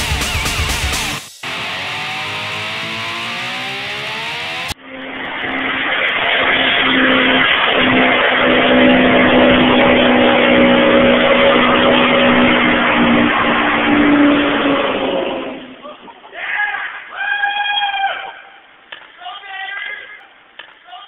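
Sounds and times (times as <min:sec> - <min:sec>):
supercharged engine at high revs: 0:00.0 - 0:15.7
tires squealing on pavement: 0:05.7 - 0:15.8.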